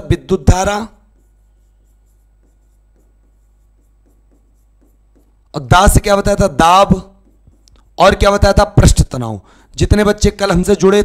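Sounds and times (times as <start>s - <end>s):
faint steady hum: 0.0s - 9.9s
pen tapping and scratching on board: 0.1s - 8.6s.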